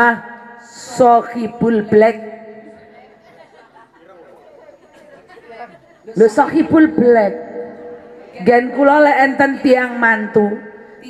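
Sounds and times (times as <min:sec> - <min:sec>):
audience voices murmuring: 0:02.6 - 0:06.5.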